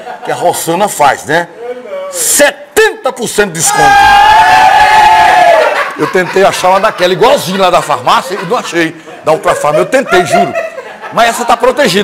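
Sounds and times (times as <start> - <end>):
loud high-pitched yell: 3.6 - 5.8.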